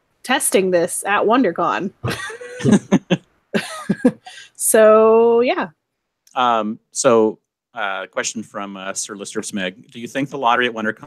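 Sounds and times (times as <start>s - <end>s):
breathy laughter: 2.0s - 4.5s.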